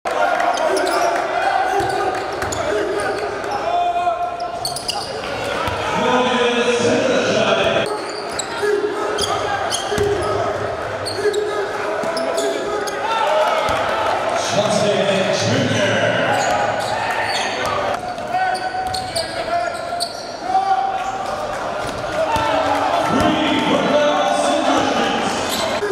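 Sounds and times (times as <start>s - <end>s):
voices of players and spectators: 0.1s - 25.9s.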